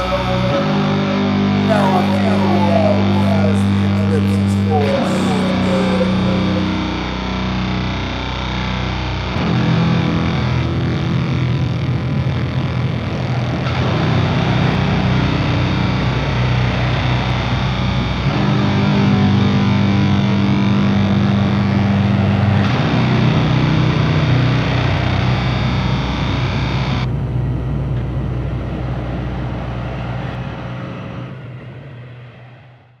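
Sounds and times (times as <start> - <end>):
distorted guitar chords: 0.0 - 29.4.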